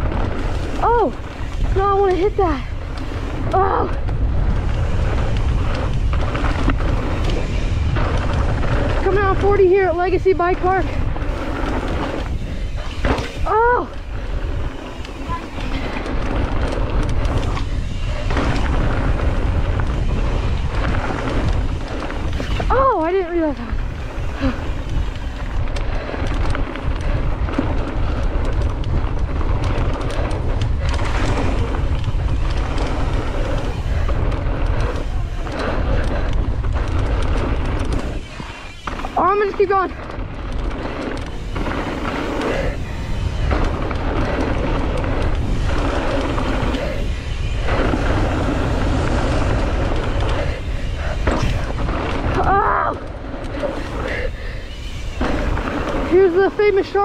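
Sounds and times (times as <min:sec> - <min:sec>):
bike tyres rattling over dirt: 0:00.0 - 0:57.0
wind buffeting microphone: 0:00.0 - 0:57.0.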